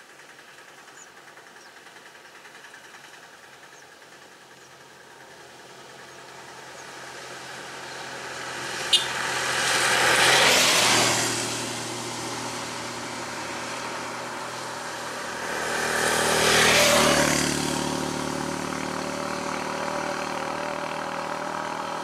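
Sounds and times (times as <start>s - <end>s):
engine idling: 0.0s - 9.1s
motorcycle passing: 0.0s - 22.0s
vehicles passing on wet road: 0.0s - 22.0s.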